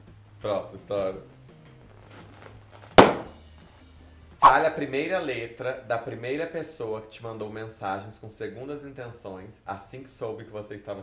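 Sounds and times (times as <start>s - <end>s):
balloon bursting: 2.3s - 3.4s.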